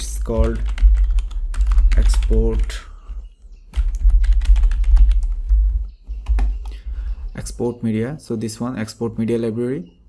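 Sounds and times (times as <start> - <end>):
typing on computer keyboard: 0.2 - 2.7, 3.8 - 5.6.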